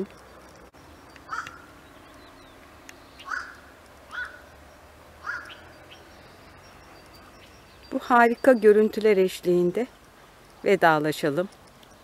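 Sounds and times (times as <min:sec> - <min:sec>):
crow cawing: 0:01.3 - 0:01.7, 0:03.2 - 0:04.4, 0:05.2 - 0:05.6.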